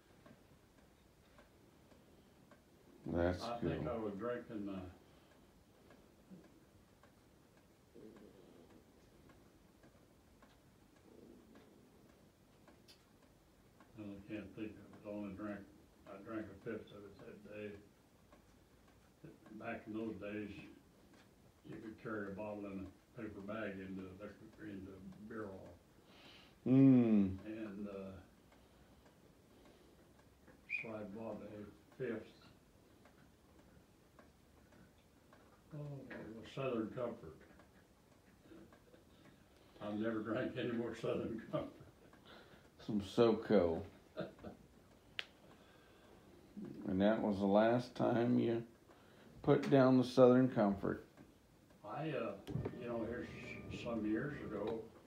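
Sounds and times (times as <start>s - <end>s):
faint ticks: 3.9s - 55.0s
man saying oh: 26.7s - 27.4s
faint low murmurs: 51.9s - 55.0s.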